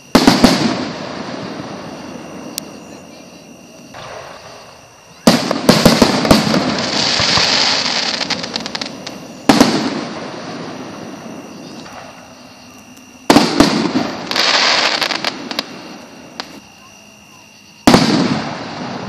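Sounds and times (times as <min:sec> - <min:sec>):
fireworks bangs: 0:00.0 - 0:19.0
fireworks crackling: 0:00.0 - 0:19.0.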